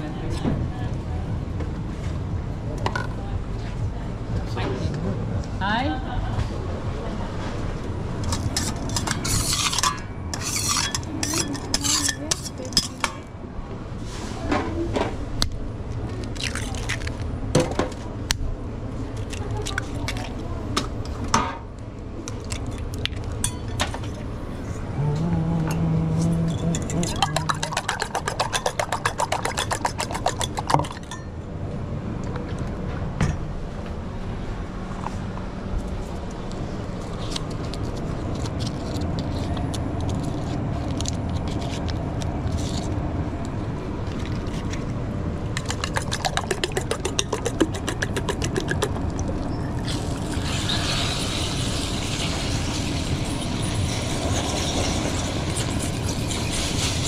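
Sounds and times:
low kitchen hum: 0.0 - 57.0
fork beating eggs in metal bowl: 8.3 - 13.0, 26.4 - 31.2, 45.6 - 49.3
eggs being cracked: 26.5 - 31.2, 45.6 - 53.1.

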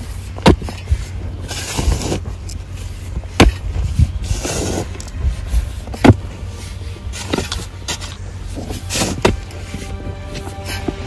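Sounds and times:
low rumble: 0.0 - 11.0
shovel striking stony soil: 0.0 - 11.0.

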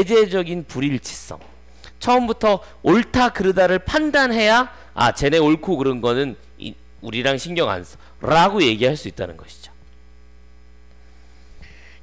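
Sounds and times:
electrical mains hum: 0.0 - 12.0
soft hiss: 9.2 - 12.0.

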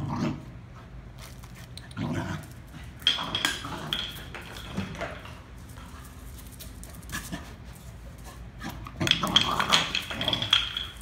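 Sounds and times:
dog play growling: 0.0 - 4.8.

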